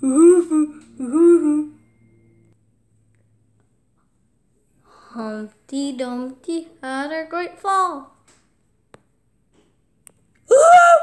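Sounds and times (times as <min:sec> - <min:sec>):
person humming a tune: 0:00.0 - 0:01.9.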